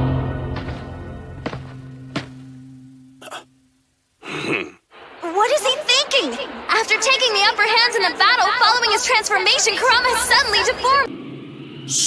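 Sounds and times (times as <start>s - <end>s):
low background music note: 0.0s - 4.0s
person coughing: 3.2s - 3.5s, 4.2s - 4.8s.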